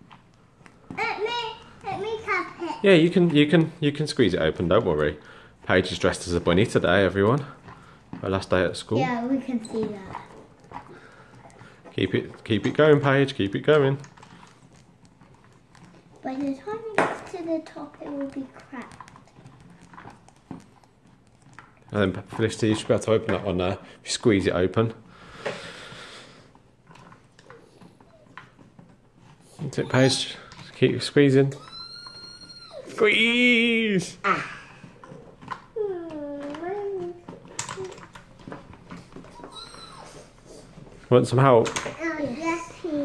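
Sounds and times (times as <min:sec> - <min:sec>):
plastic toy pieces clicking: 0:35.5 - 0:38.6.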